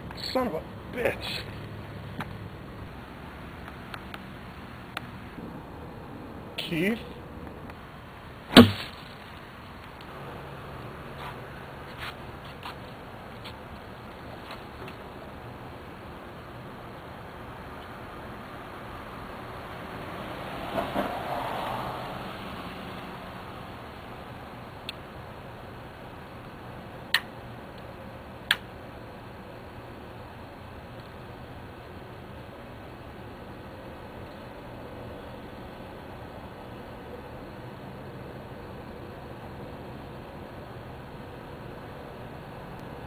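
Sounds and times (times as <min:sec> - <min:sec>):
loud sharp knock: 0:08.5 - 0:09.0.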